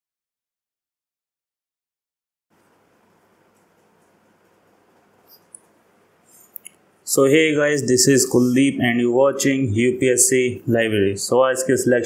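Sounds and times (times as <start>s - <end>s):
high-pitched clicks and squeaks: 3.5s - 6.8s.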